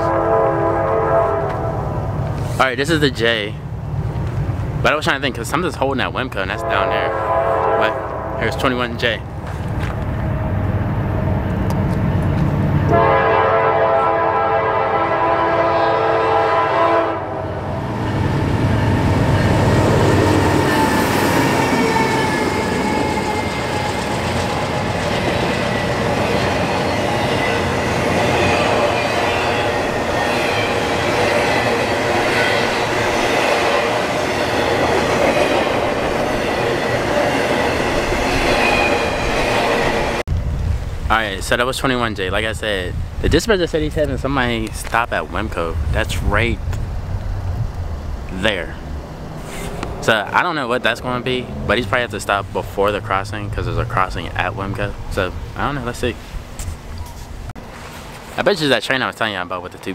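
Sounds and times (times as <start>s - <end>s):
train horn blast: 0.0s - 2.0s, 6.5s - 8.8s, 12.8s - 17.9s
diesel locomotives passing: 0.0s - 41.4s, 44.0s - 59.9s
freight cars rumbling and clattering: 8.4s - 12.8s, 17.7s - 59.9s.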